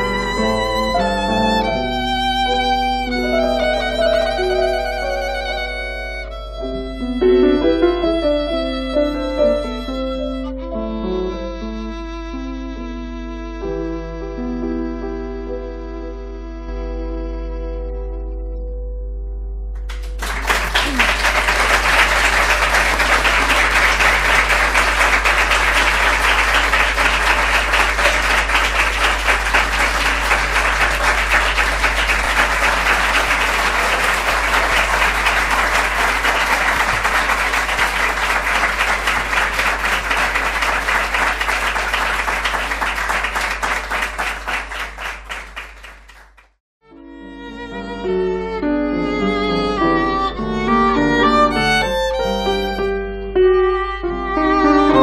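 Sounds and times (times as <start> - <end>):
audience applauding: 0.0 - 5.9, 19.8 - 46.6.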